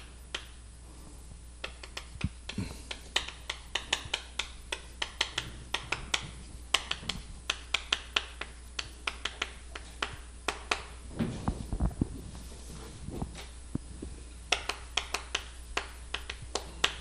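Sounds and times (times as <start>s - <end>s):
chalk tapping on chalkboard: 1.6s - 10.9s.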